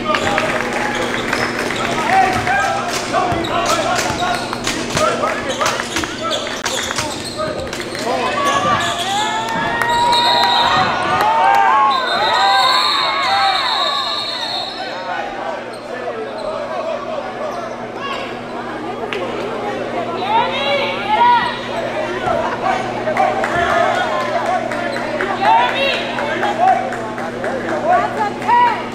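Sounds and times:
people shouting: 8.1 - 15.6
referee whistle blasts: 9.8 - 10.9, 11.8 - 15.0.

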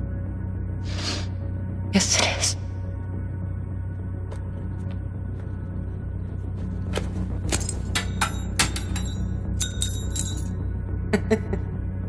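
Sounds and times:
low steady drone: 0.0 - 12.0
metal pin clinking on concrete: 7.5 - 10.6.

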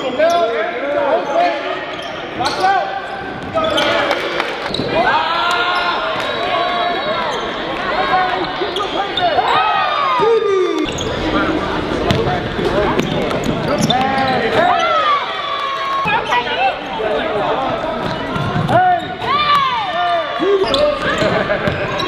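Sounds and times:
sneakers squeaking on court: 1.2 - 5.0, 10.8 - 15.0, 16.0 - 20.0, 20.6 - 22.0
basketball bouncing: 12.0 - 14.0.

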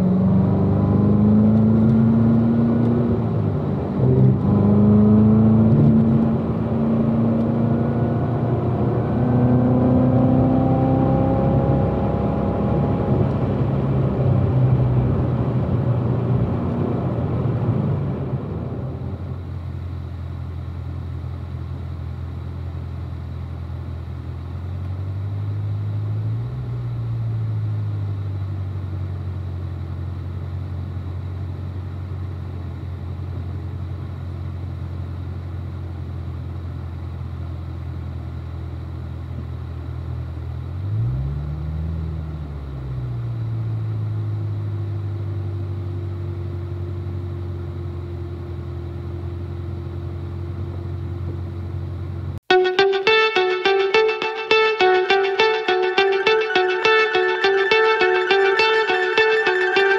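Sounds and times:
car engine idling and revving: 0.0 - 52.5.

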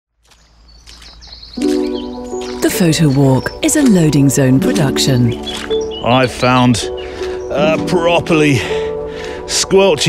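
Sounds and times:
birdsong: 0.1 - 10.0
faint outdoor ambience: 0.1 - 10.0
loud sustained music chord: 1.6 - 10.0.

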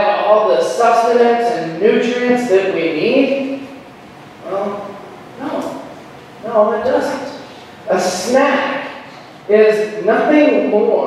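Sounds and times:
man talking: 4.4 - 8.9.

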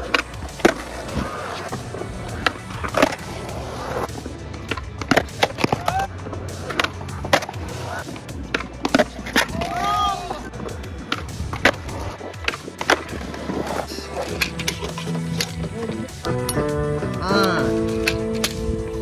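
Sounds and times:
background music: 0.0 - 19.0
skateboard wheels rolling: 0.0 - 19.0
skateboards clacking on concrete: 0.0 - 19.0.

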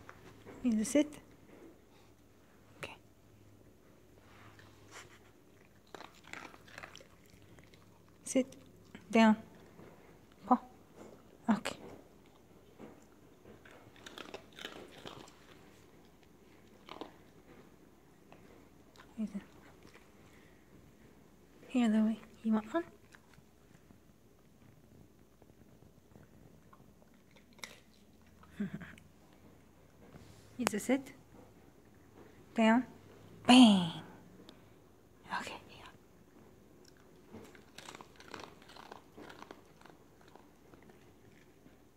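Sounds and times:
dog crunching a treat: 5.5 - 10.4, 12.0 - 20.4, 25.3 - 28.5, 36.8 - 41.9
person whispering: 35.2 - 36.0.

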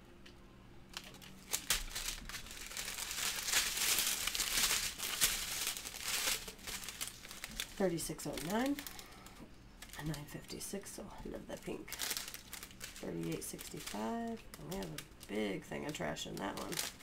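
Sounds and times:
plastic bags crinkling: 0.9 - 17.0.

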